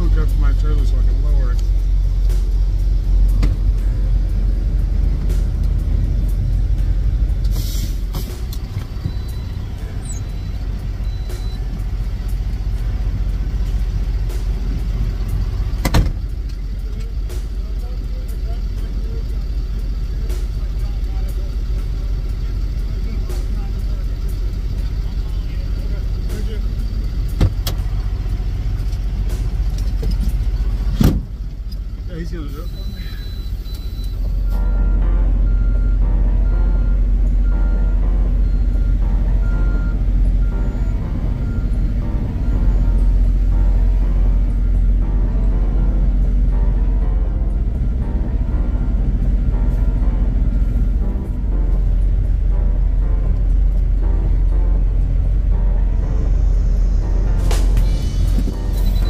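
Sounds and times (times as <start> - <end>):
truck engine idling: 0.0 - 59.0.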